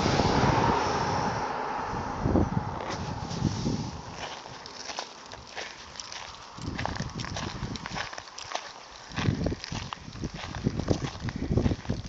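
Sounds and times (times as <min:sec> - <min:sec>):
low rumble on microphone: 0:00.0 - 0:08.2, 0:09.1 - 0:12.0
footsteps crunching on gravel: 0:02.8 - 0:12.0.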